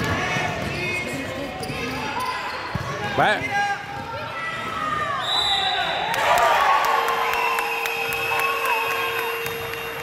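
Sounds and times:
sneakers squeaking on wooden floor: 0.3s - 3.0s.

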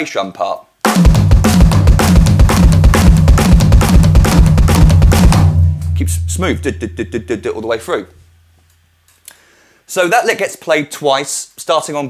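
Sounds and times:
electronic drums playing: 0.9s - 8.1s
bass drum: 0.9s - 8.4s.

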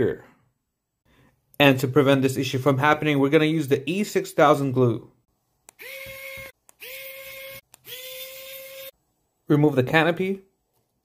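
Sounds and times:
small electric motor whining: 5.8s - 9.0s.

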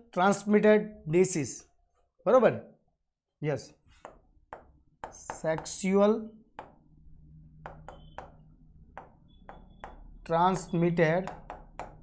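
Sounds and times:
stylus tapping on glass: 4.0s - 5.8s, 6.5s - 12.0s.

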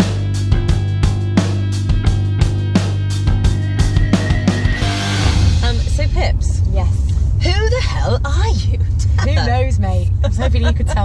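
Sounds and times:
car road rumble: 1.9s - 11.0s
women talking: 5.6s - 11.0s
women laughing: 8.7s - 11.0s.

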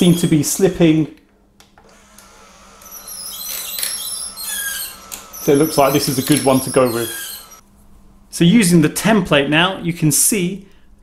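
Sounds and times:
roller-blind motor running: 1.8s - 7.6s
high wavering squeak: 2.8s - 7.6s.

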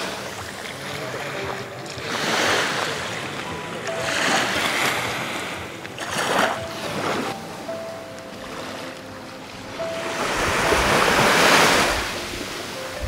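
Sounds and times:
small waves washing onto sand: 0.0s - 13.0s.

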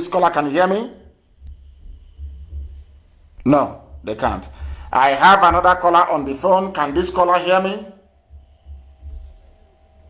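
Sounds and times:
faint high whines: 0.0s - 10.0s
low uneven phone line hum: 0.0s - 10.0s.

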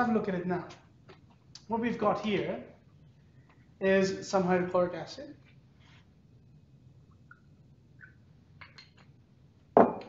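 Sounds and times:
liquid dripping into glass: 7.1s - 9.1s.

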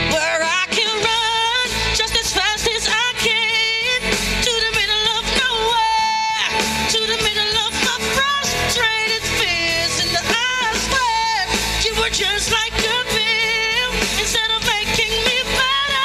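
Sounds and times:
pop backing track with guitar: 0.0s - 16.0s
woman singing into a microphone: 0.0s - 16.0s.

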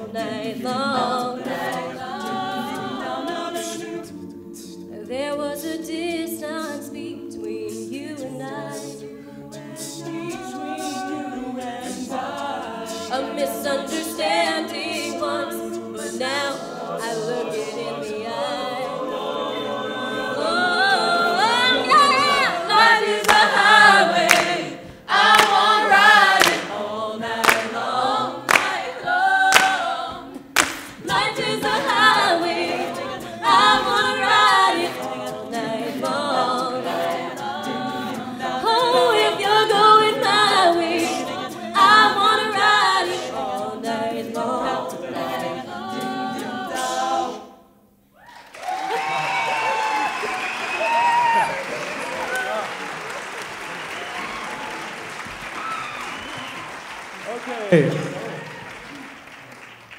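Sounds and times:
a cappella choir singing: 0.0s - 48.1s
audience applause: 23.2s - 24.6s, 25.2s - 26.7s, 27.4s - 27.7s, 28.5s - 28.8s, 48.3s - 59.9s.

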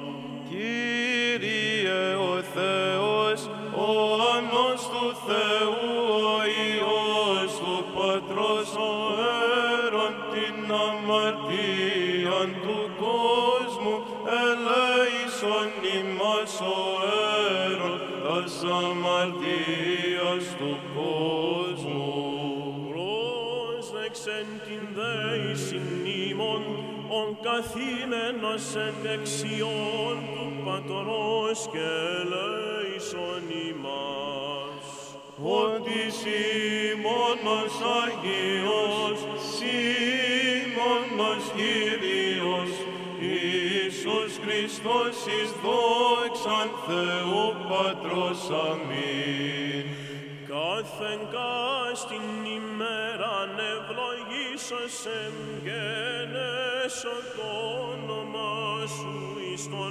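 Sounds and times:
men chanting ornamented melody: 0.0s - 59.9s.

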